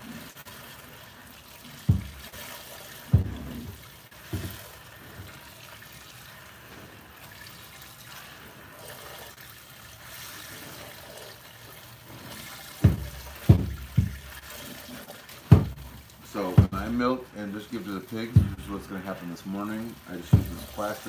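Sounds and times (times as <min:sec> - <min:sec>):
low thumps: 0:01.9 - 0:02.4, 0:03.2 - 0:03.8, 0:12.8 - 0:14.4, 0:15.5 - 0:17.1, 0:18.3 - 0:18.9, 0:20.3 - 0:20.8
milk squirting into plastic bucket: 0:07.2 - 0:21.0.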